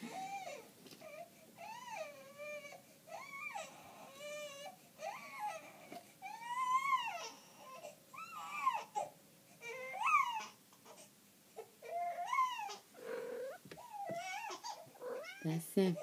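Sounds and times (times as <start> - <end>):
baby crying and squealing: 6.3 - 9.0, 9.6 - 10.6, 11.8 - 15.5.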